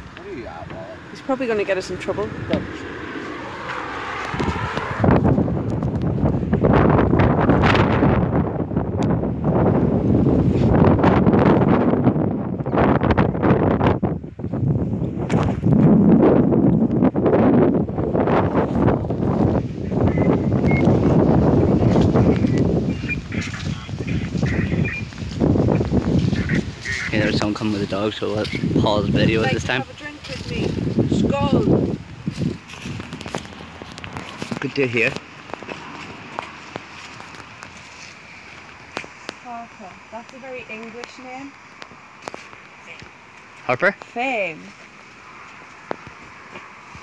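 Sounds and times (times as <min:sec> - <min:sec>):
wind buffeting microphone: 0:00.0 - 0:43.4.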